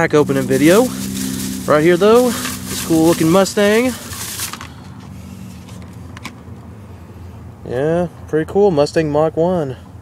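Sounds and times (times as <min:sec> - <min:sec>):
car engine idling: 0:00.0 - 0:07.6.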